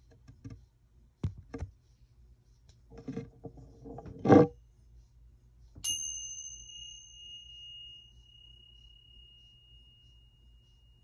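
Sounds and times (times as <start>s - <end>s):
meditation bell ringing: 5.8s - 11.0s.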